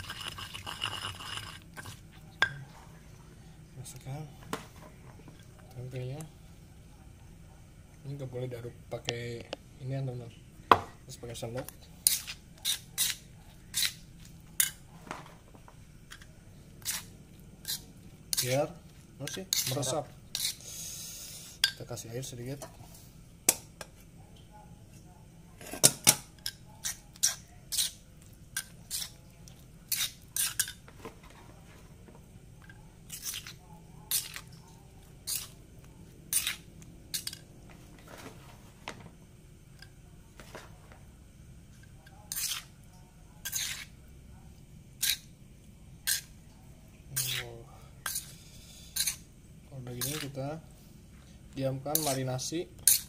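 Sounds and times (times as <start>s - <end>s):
metal spoon scraping stone mortar: 0.0s - 2.0s, 12.0s - 14.0s, 16.1s - 18.6s, 19.2s - 20.6s, 26.4s - 28.0s, 28.6s - 29.2s, 29.9s - 30.8s, 33.1s - 34.5s, 35.2s - 35.6s, 36.3s - 37.4s, 42.3s - 42.7s, 43.4s - 43.9s, 45.0s - 45.3s, 46.0s - 46.3s, 47.1s - 49.2s, 49.9s - 50.4s, 51.9s - 52.2s, 52.8s - 53.0s.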